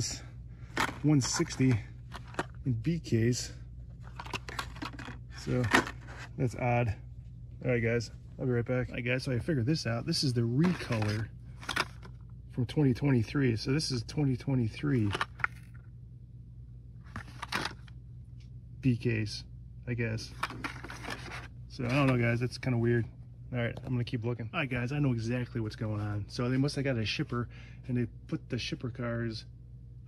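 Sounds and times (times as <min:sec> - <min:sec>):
faint handling noises: 0:00.0 - 0:12.3, 0:14.8 - 0:15.8, 0:17.0 - 0:18.6, 0:20.2 - 0:24.2
low hum: 0:00.0 - 0:30.0.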